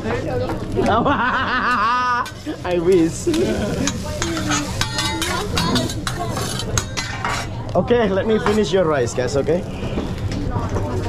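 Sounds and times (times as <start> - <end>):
fried rice sizzling: 0.1 - 9.6
metal spatula scraping a griddle: 2.2 - 7.6.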